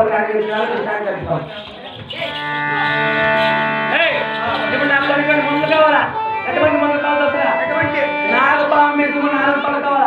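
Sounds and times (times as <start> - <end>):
person speaking: 0.0 - 9.2
harmonium chord: 1.6 - 10.0.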